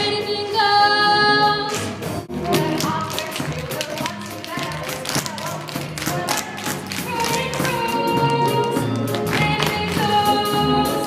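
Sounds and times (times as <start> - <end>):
show music: 0.0 - 11.0
tap shoes striking stage floor: 1.8 - 10.3.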